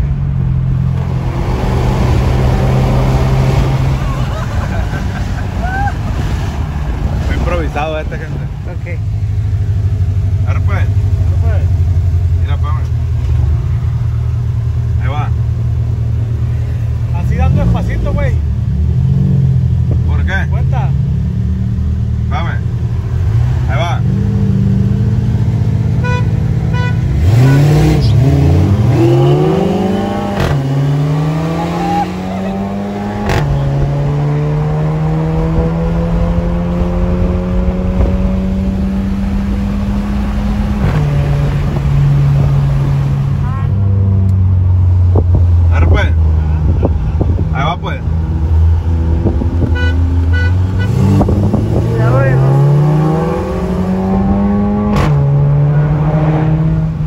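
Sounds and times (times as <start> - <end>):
car engine droning and revving: 0.0 - 57.0.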